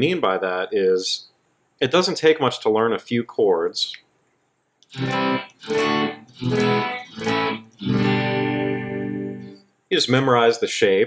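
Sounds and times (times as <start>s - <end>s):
electric guitar strumming chords: 4.9s - 9.6s.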